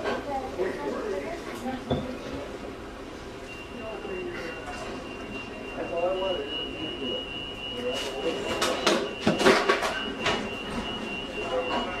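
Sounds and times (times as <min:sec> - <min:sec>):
steady high-pitched tone: 0:03.5 - 0:12.0
kitchen clatter: 0:08.5 - 0:10.9
sharp knocks and clanks: 0:08.6 - 0:10.9.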